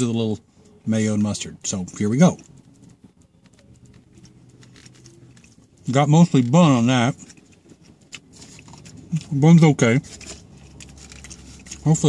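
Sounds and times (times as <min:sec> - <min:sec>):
person chewing food: 0:07.1 - 0:09.4, 0:10.0 - 0:11.9.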